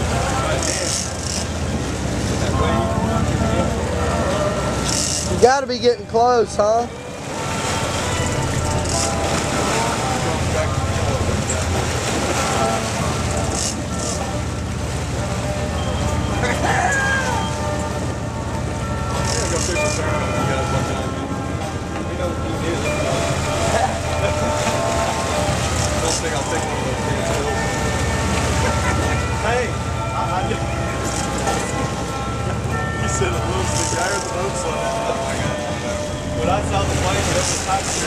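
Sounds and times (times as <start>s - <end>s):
boat engines rumbling: 0.0s - 38.0s
water noise: 0.0s - 38.0s
wind: 0.0s - 38.0s.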